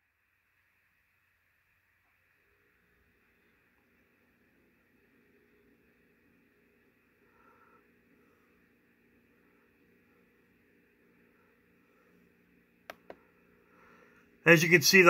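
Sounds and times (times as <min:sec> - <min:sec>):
faint steady low hum: 0:00.0 - 0:15.0.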